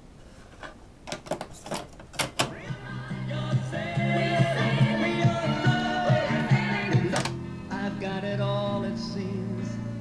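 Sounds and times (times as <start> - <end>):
music from tape deck: 2.2 - 10.0.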